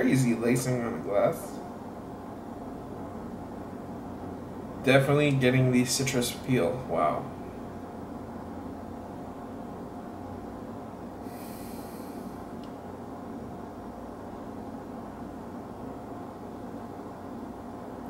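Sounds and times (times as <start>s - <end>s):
room hum: 0.0s - 18.0s
man sniffing: 11.2s - 12.4s.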